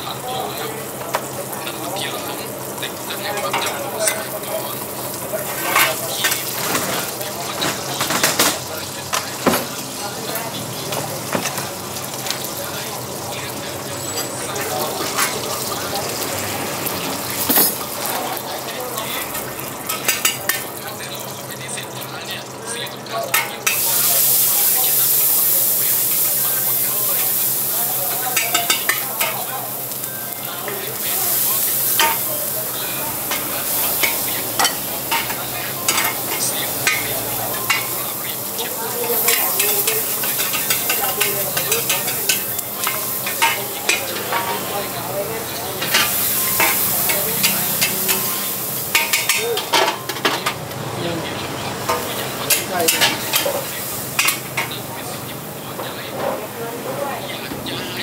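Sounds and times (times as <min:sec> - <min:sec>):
food sizzling in a wok: 0:00.0 - 0:58.0.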